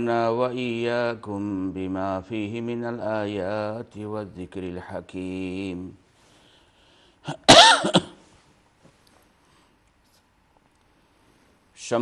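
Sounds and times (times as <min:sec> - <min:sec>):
man coughing: 0:07.3 - 0:08.2.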